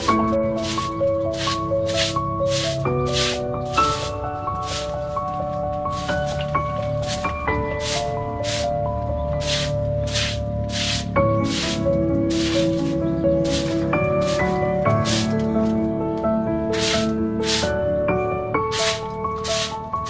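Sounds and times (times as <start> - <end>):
broom sweeping dirt floor: 0.0 - 15.8, 16.7 - 17.8, 18.7 - 20.0
background music chords: 0.0 - 20.0.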